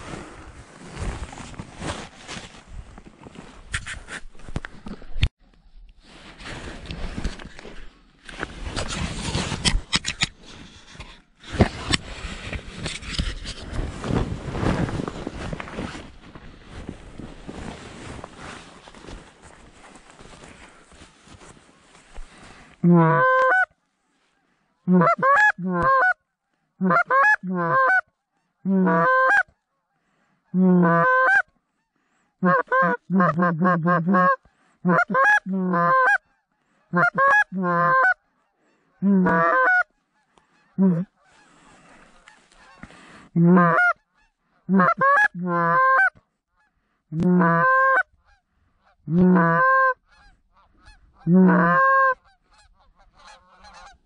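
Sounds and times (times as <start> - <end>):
goose call honks and clucks: 22.8 - 23.7, 24.9 - 26.2, 26.8 - 29.7, 30.5 - 41.5, 42.2 - 54.0.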